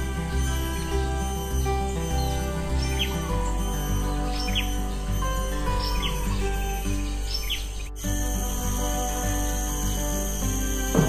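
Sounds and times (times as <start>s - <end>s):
background music: 0.0s - 11.0s
birds chirping: 0.0s - 11.0s.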